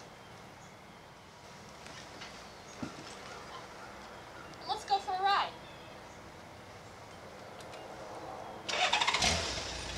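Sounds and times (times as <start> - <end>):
motorcycle starter cranking engine: 8.7 - 9.9.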